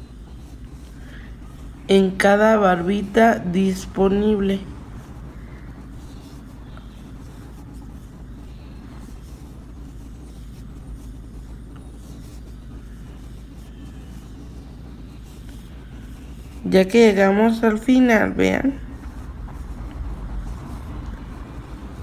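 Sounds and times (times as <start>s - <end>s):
low background rumble: 0.0s - 22.0s.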